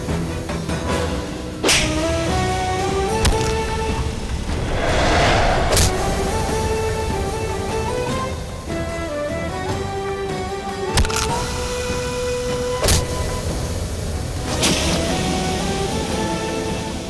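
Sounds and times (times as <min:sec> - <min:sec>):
dramatic film score: 0:00.2 - 0:17.0
whoosh effect: 0:04.3 - 0:08.3.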